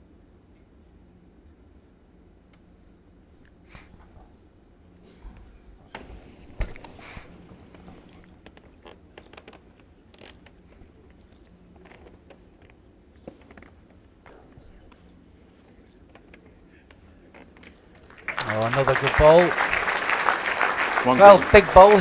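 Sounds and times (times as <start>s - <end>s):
low room hum: 0.0s - 22.0s
crowd clicks and rustles: 5.0s - 22.0s.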